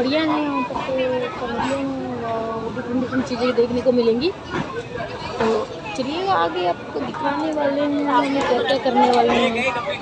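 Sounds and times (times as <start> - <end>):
overlapping chatter of people: 0.0 - 10.0.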